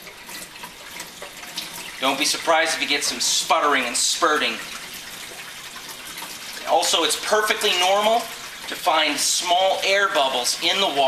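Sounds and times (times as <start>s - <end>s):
faucet running: 0.0s - 11.0s.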